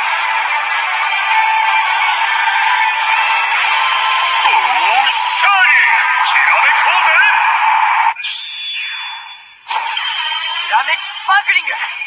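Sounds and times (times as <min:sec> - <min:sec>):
tinny toy voice sound effect: 0:04.5 - 0:07.3.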